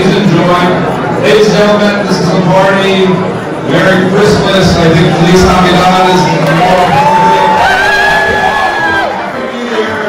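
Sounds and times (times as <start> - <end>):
crowd cheering and clapping: 6.0 - 9.7
music with voice holding notes: 7.2 - 10.0.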